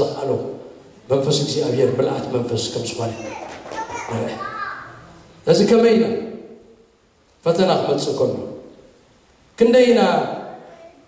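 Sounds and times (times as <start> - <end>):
man's amplified speech: 0.0 - 4.7, 5.4 - 6.3
faint high-pitched voices: 3.0 - 5.3.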